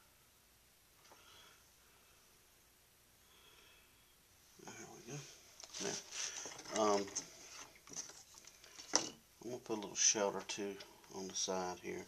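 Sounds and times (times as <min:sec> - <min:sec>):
man speaking: 0:04.6 - 0:07.2, 0:09.4 - 0:12.0.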